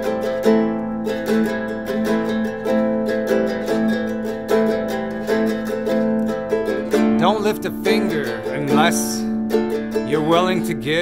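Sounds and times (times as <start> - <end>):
guitalele chord strokes: 0.0 - 11.0.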